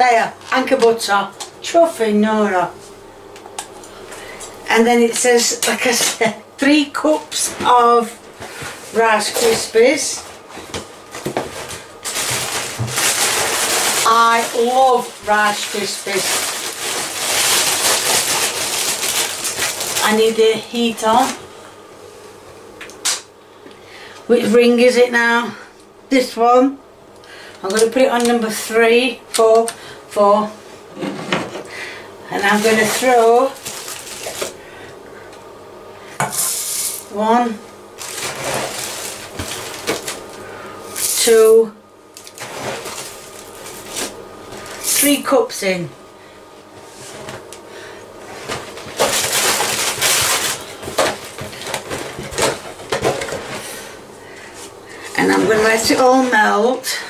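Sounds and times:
cereal packet rustling: 0:11.6 - 0:20.4, 0:32.4 - 0:34.6, 0:38.0 - 0:40.4, 0:42.1 - 0:45.0, 0:48.8 - 0:52.4.

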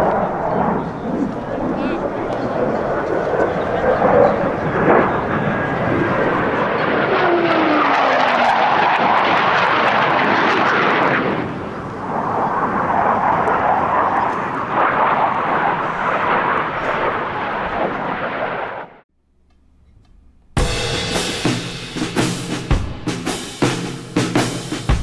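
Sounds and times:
jet roar flying past: 0:00.0 - 0:19.0.

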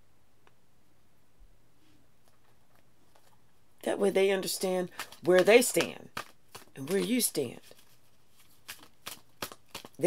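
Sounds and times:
cards being shuffled: 0:04.5 - 0:10.0.

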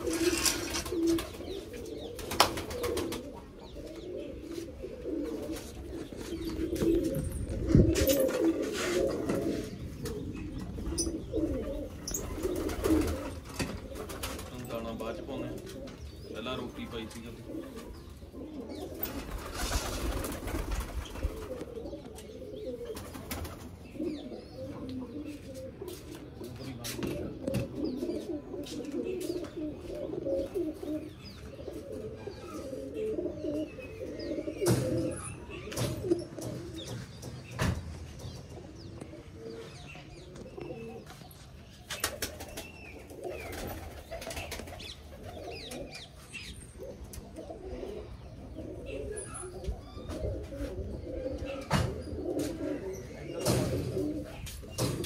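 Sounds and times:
pigeons cooing: 0:00.0 - 0:55.0.

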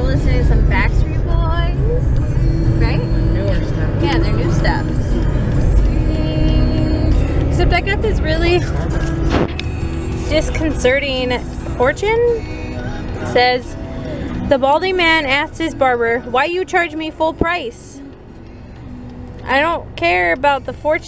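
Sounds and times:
people talking: 0:00.0 - 0:09.4, 0:10.2 - 0:12.5, 0:13.2 - 0:18.0, 0:19.4 - 0:21.0
background music: 0:00.0 - 0:21.0
car cabin rumble: 0:00.0 - 0:21.0.

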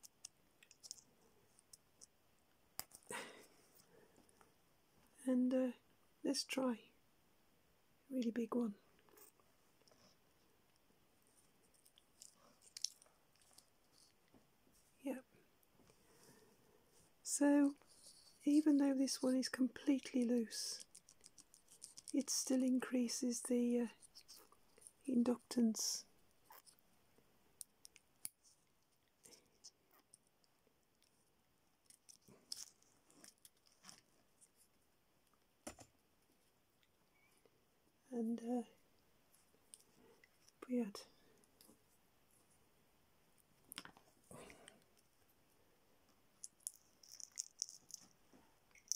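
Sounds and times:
small plastic clicks: 0:00.0 - 0:02.1, 0:20.0 - 0:22.3, 0:46.4 - 0:48.1
faint handling noise: 0:26.3 - 0:37.5.

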